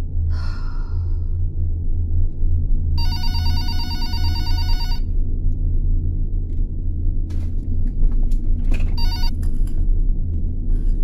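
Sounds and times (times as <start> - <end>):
steady low hum: 0.0 - 11.0
telephone electronic warbling ring: 3.0 - 5.0, 9.0 - 9.3.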